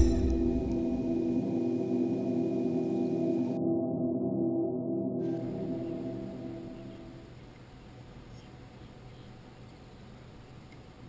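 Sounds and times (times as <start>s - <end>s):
sustained ringing tone: 0.0s - 7.4s.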